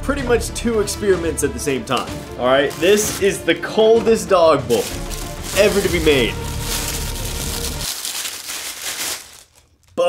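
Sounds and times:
packaging rustling and crackling: 1.9 - 3.4, 4.7 - 10.0.

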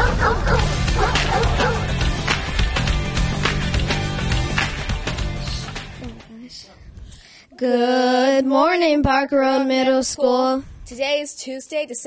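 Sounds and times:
dog yipping and barking: 0.0 - 1.9
intro music: 0.0 - 6.3.

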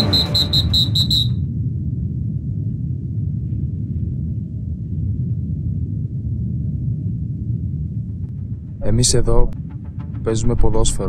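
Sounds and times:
pulsing high tone: 0.0 - 1.4, 8.4 - 11.0
low rumble: 0.0 - 11.0.

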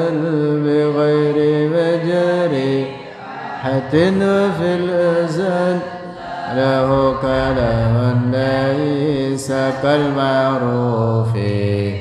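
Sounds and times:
man chanting melodically: 0.0 - 3.0, 3.6 - 12.0.

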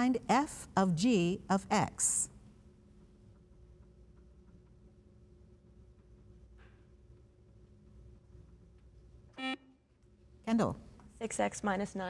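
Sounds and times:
quiz show buzzer beep: 9.4 - 9.8.

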